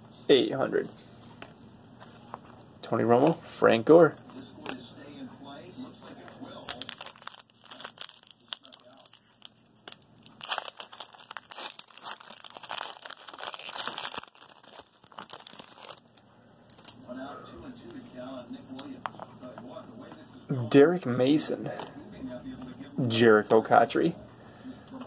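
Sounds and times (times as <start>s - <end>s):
foil wrapper tearing and crinkling: 6.6s - 17.0s.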